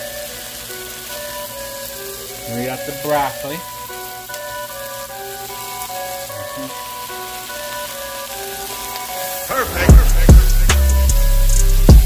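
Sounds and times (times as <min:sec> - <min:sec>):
background music with held notes: 0:00.0 - 0:12.0
shrimp sizzling in a pan: 0:00.0 - 0:12.0.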